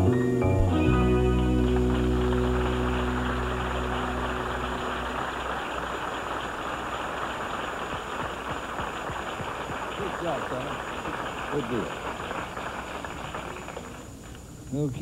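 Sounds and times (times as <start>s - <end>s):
band holding final chord with organ: 0.0s - 8.2s
audience applause: 1.0s - 14.4s.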